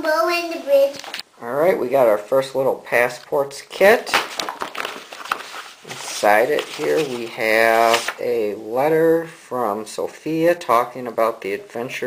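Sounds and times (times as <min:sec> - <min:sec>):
card folder crinkling: 0:04.1 - 0:08.2.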